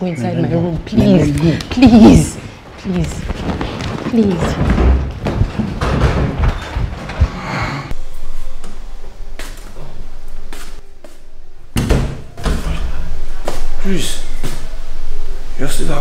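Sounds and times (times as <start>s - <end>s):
wooden door handling thuds: 4.5s - 7.1s.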